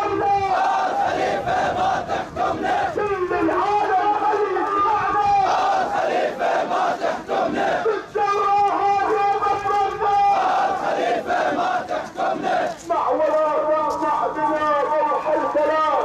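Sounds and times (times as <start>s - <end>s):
crowd chanting slogans: 0.0s - 13.3s.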